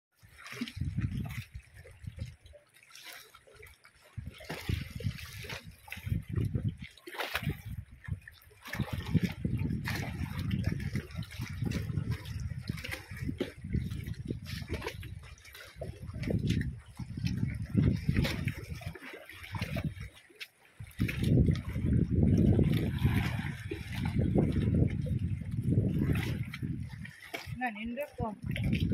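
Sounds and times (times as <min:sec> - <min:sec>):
sea water lapping below pier: 0:00.1 - 0:28.9.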